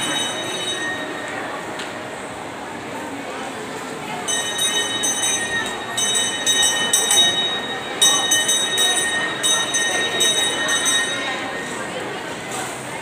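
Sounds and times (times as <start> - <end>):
supermarket hubbub: 0.0 - 13.0.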